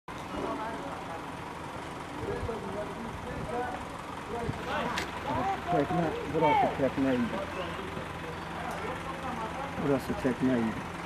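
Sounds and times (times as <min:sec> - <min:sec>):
outdoor rumble and hiss: 0:00.1 - 0:11.0
indistinct voices talking: 0:00.3 - 0:11.0.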